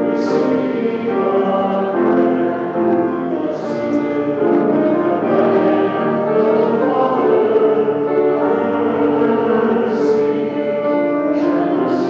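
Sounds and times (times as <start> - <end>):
congregation and choir singing: 0.0 - 12.0.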